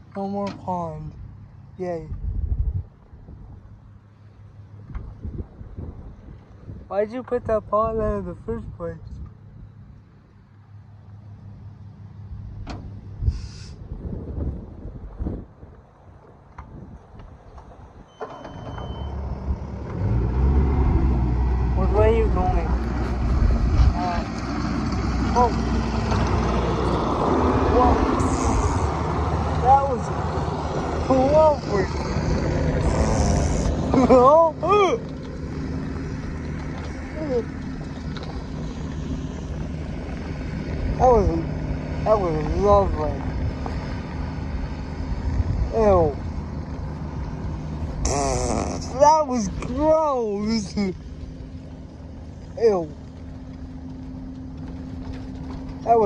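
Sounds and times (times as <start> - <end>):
exhaust blowing on microphone: 12.8 - 18.0, 20.2 - 51.2
diesel engine running: 18.2 - 56.0.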